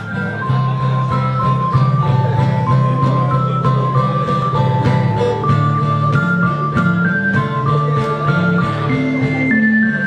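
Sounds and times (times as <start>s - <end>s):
keyboard melody: 0.0s - 10.0s
strummed acoustic guitar: 0.0s - 10.0s.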